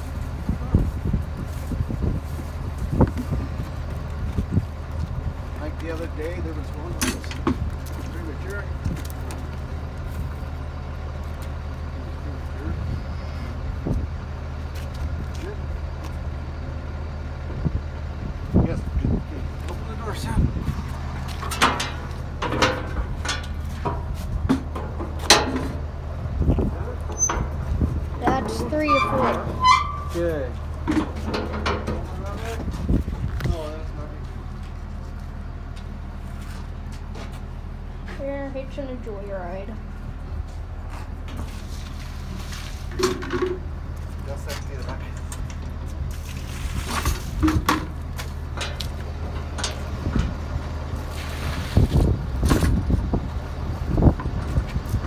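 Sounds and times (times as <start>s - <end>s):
truck engine idling: 0.0s - 55.0s
knocks and clangs on metal trailer: 7.0s - 7.7s, 21.3s - 25.9s, 26.8s - 32.7s, 42.9s - 43.7s, 46.8s - 50.4s
voices talking: 18.5s - 22.9s, 25.7s - 35.5s, 36.8s - 41.3s.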